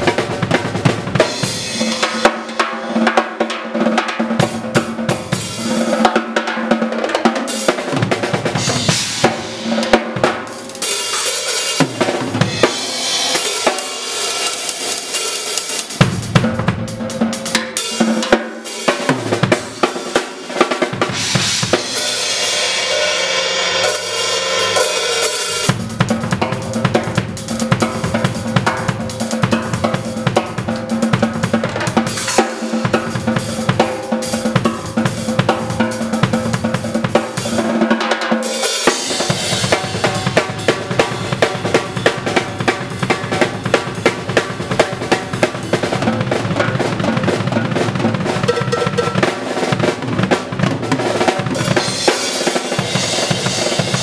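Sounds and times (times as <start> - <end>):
drum kit played fast: 0.0 - 54.0.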